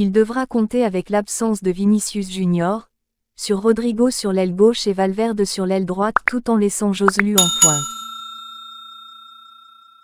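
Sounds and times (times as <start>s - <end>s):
bell-like notification chime: 7.4s - 10.0s.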